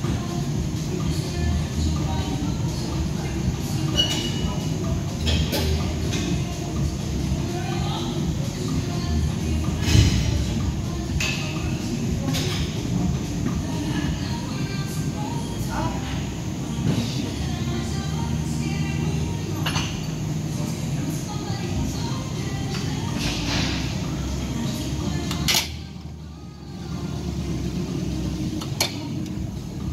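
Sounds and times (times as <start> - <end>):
gym room rumble: 0.0 - 29.9.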